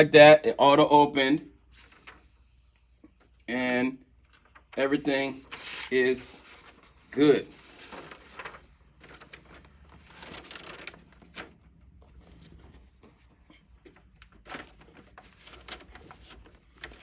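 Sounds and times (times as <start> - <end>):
paper and fabric rustling: 1.6 - 3.4, 4.2 - 17.0.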